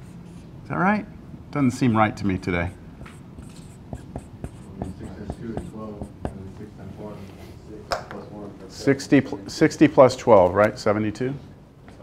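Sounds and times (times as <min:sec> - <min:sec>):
pen tapping and scratching on board: 0:03.0 - 0:06.5.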